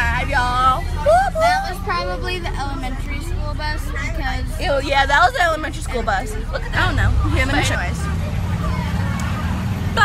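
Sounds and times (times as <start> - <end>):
bus engine and road rumble: 0.0 - 10.0
faint passenger chatter: 0.0 - 10.0.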